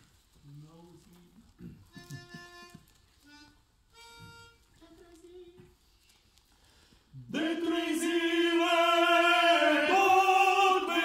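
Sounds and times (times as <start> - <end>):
men's choir humming held notes: 7.3 - 11.0.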